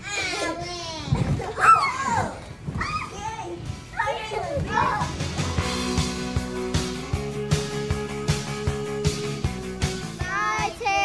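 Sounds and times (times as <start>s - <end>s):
children squealing and calling out: 0.0s - 5.2s
background music: 3.6s - 11.0s.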